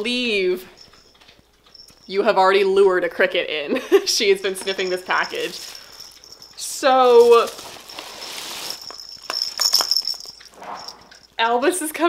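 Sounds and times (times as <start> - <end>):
cat toy jingling and rattling: 0.2 - 11.5
plastic bag crinkling: 4.3 - 11.0.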